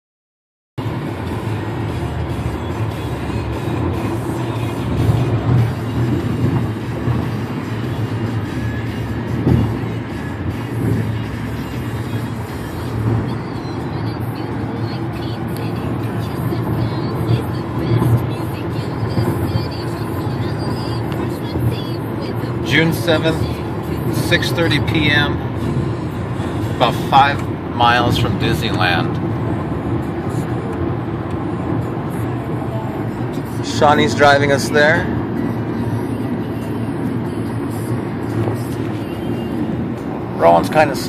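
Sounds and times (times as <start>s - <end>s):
car road and engine noise: 0.8s - 41.0s
music playing: 0.8s - 41.0s.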